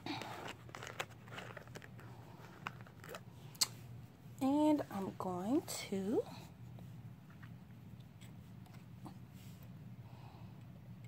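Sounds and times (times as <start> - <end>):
paper rustling: 0.1 - 3.2.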